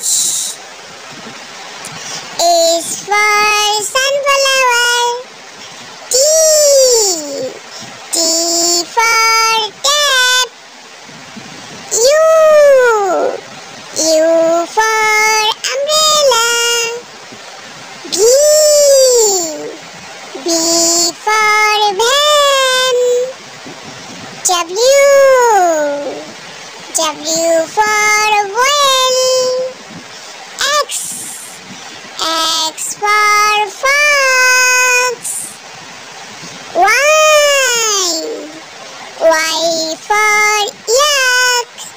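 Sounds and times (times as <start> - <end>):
child sing-song voice: 0.0 - 10.7, 11.8 - 17.4, 18.0 - 35.7, 36.4 - 41.9.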